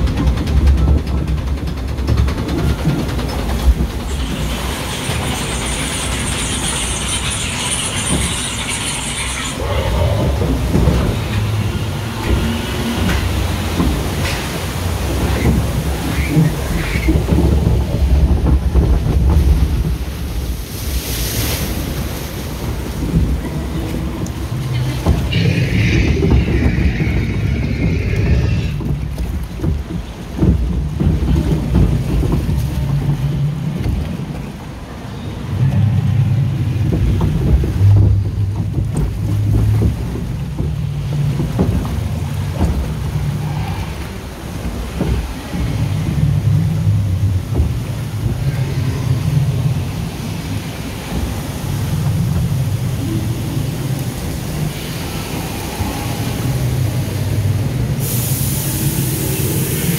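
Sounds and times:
water rushing against boat hull: 0.0 - 59.9.

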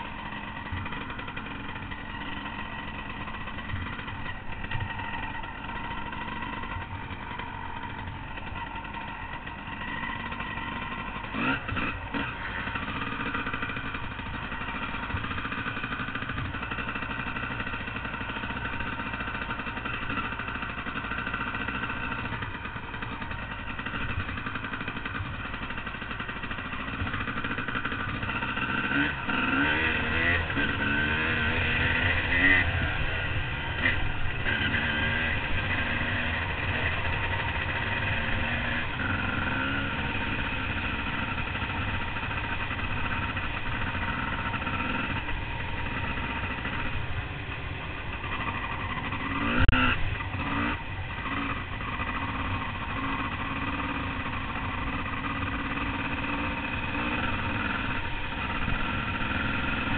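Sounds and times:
dirt bike engine: 0.0 - 59.9.

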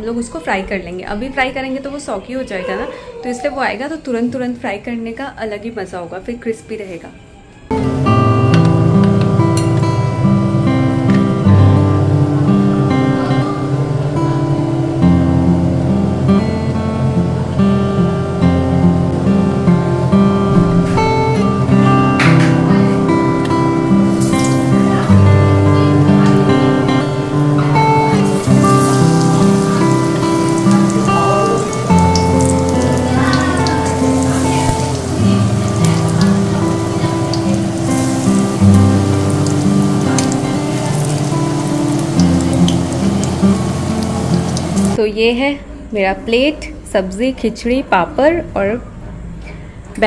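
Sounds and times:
instrumental background music: 7.6 - 45.0
hot oil sizzling: 7.7 - 13.5, 22.8 - 45.0.

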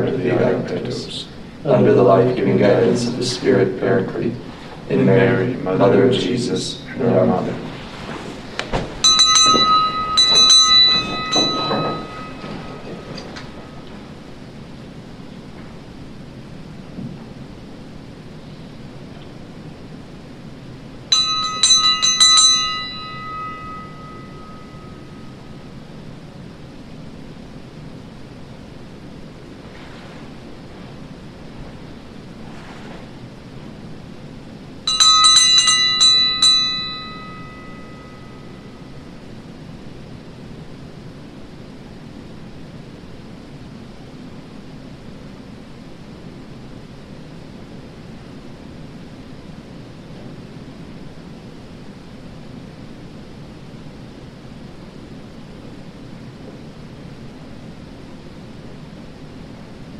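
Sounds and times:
small bell ringing: 9.0 - 13.8, 21.1 - 25.6, 34.9 - 39.1.

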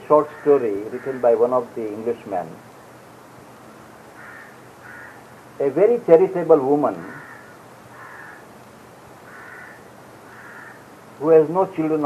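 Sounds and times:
faint recording hiss: 0.0 - 12.0
short bird calls: 4.1 - 5.3, 7.0 - 8.5, 9.2 - 10.9.

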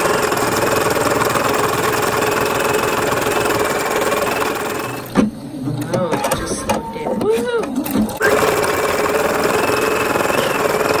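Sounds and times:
embroidery machine stitching: 0.0 - 5.1, 7.8 - 11.0
embroidery machine whines: 8.1 - 11.0.

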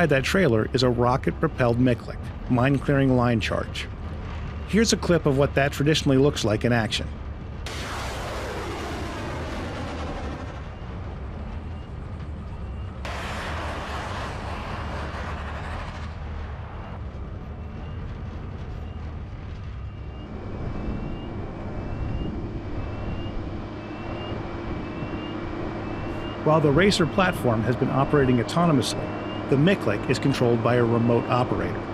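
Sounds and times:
low vehicle engine hum: 0.0 - 31.9
rocket rushing away: 7.7 - 10.6, 13.1 - 16.4.

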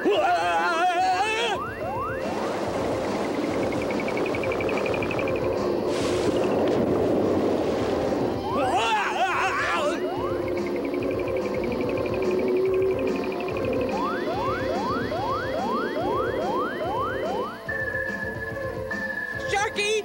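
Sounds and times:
cartoon soundtrack music: 0.0 - 7.0, 8.1 - 20.0
fast warbling high tone: 1.3 - 5.8, 8.3 - 18.4
rising whistle-like sweeps: 1.6 - 6.7.

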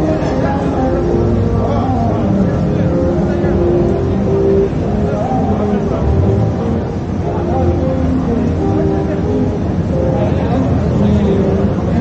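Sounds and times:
crowd voices talking: 0.0 - 12.0
steady held tone: 0.0 - 12.0
traffic hum: 0.0 - 12.0.

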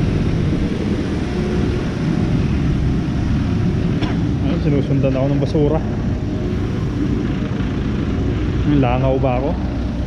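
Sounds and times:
garbage truck diesel engine rumbling: 0.0 - 10.0.

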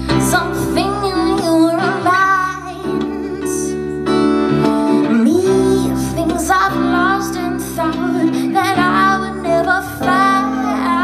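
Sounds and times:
woman singing: 0.0 - 4.0, 4.9 - 11.0
acoustic guitar: 0.0 - 11.0
band accompaniment: 0.0 - 11.0.

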